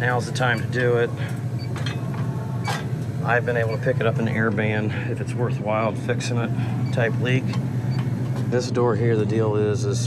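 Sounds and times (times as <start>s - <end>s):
freezer fan motors humming: 0.0s - 10.0s.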